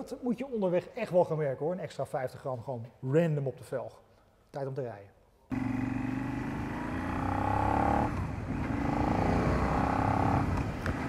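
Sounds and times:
motorcycle engine running: 5.5 - 11.0.

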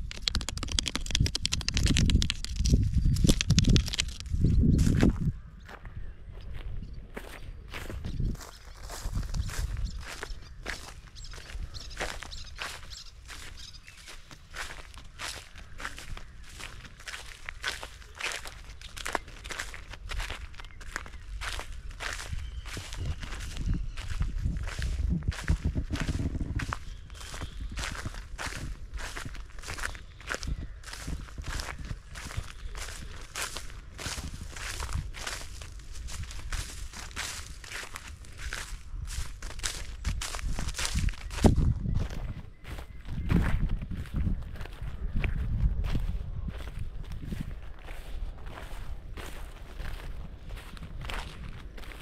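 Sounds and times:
footsteps on dry stubble: 0.0 - 52.0.

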